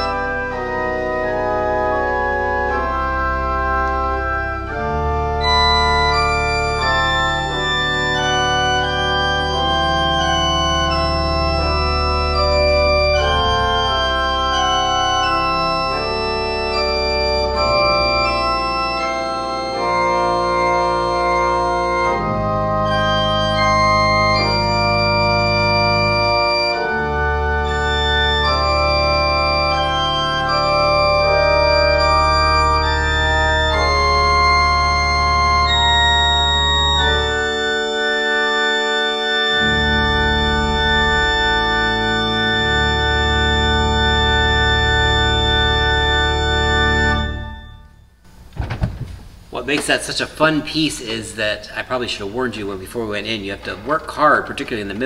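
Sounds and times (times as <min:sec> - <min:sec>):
church organ chords: 0:00.0 - 0:48.7, 0:49.3 - 0:55.0
organ pedal bass notes: 0:00.0 - 0:55.0.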